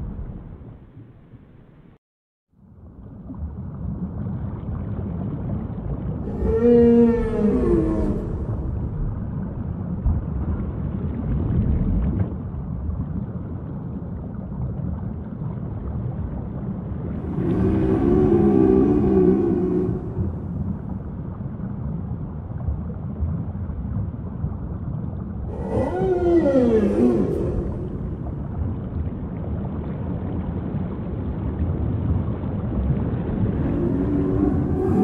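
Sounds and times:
whale calls: 0:06.2 - 0:09.6, 0:17.1 - 0:21.4, 0:25.4 - 0:29.2, 0:33.3 - 0:35.0.

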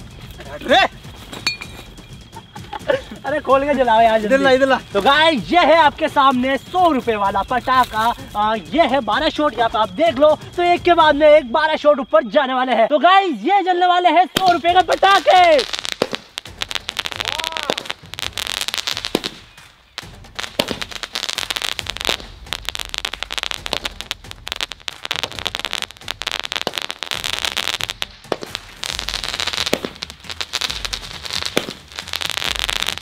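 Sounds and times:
fireworks bangs and crackling: 0:00.0 - 0:11.5, 0:14.3 - 0:33.0.

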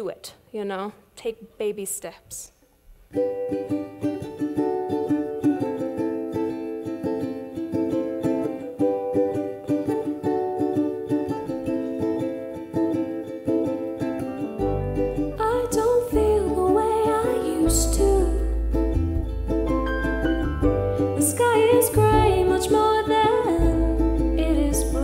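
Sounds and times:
ukulele strumming: 0:02.9 - 0:25.0
upright bass: 0:14.4 - 0:25.0.

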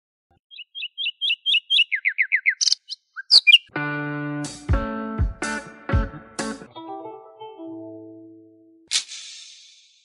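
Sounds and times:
bird chirps: 0:00.3 - 0:03.7
strummed guitar music: 0:03.7 - 0:08.1.

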